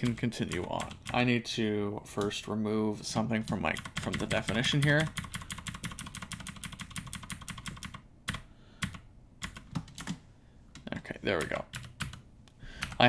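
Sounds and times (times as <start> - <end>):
computer keyboard keys clicking: 3.7 - 10.2, 10.8 - 12.2, 12.8 - 13.0.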